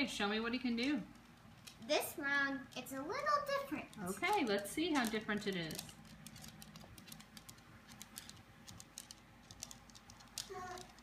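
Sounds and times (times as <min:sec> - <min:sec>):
toy robot clicks and ticks: 0:00.8 - 0:11.0.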